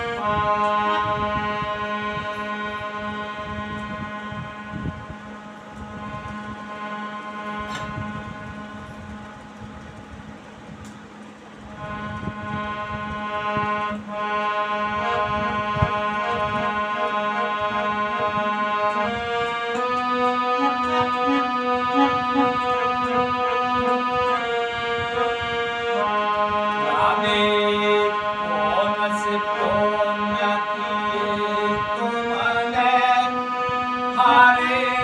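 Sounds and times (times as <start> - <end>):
harmonium chords: 0.0 - 35.0.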